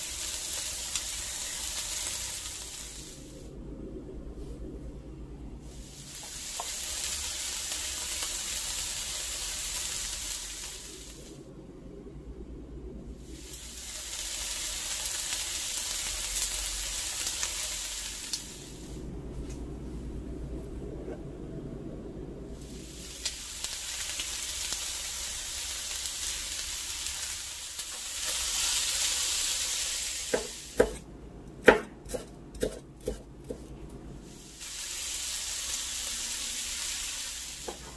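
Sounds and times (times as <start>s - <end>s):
food frying sizzle: 0.0s - 3.5s, 5.7s - 11.4s, 13.2s - 19.0s, 22.6s - 31.0s, 34.3s - 37.9s
knife chopping on wooden board: 30.3s - 31.0s, 31.6s - 33.7s.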